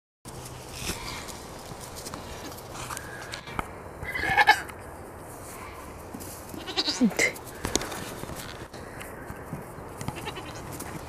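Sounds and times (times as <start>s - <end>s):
goat kid bleating: 4.0s - 4.7s, 6.5s - 7.4s, 10.1s - 10.7s.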